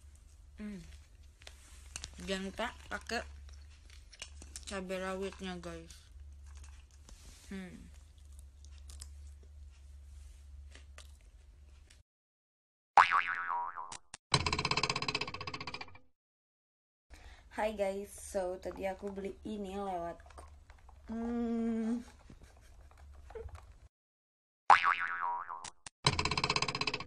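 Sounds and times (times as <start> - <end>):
cartoon boing: 13.0 - 14.0, 24.7 - 25.7
cartoon springy boing: 13.0 - 15.8, 24.7 - 26.3
fast pitched rattle: 14.4 - 16.0, 26.1 - 27.0.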